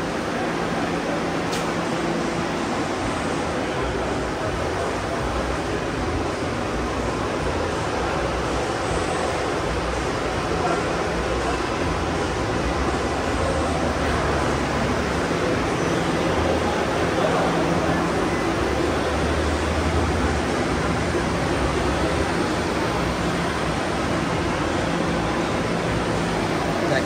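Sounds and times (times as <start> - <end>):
faint voices: 0.0 - 27.0.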